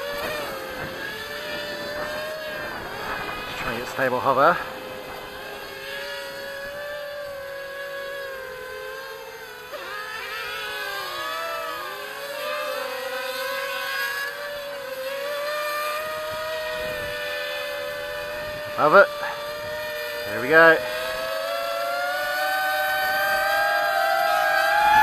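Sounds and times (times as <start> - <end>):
drone motors whining: 0.0 - 25.0.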